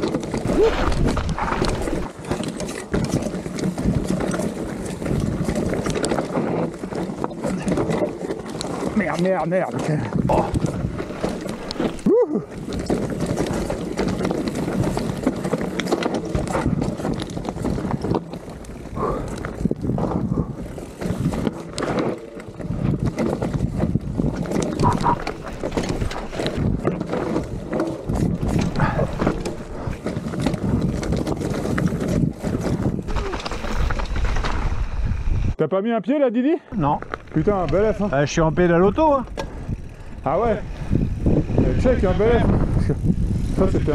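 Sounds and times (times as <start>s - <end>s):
mountain bike rattling over stones: 0.0s - 35.6s, 36.7s - 43.9s.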